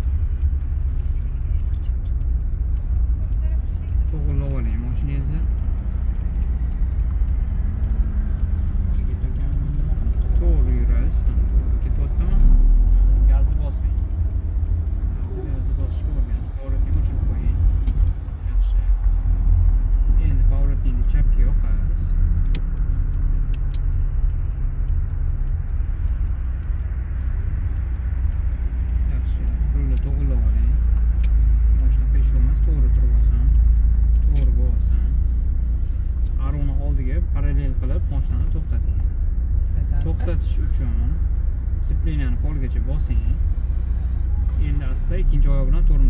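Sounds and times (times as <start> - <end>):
car engine and road noise: 0.0 - 46.0.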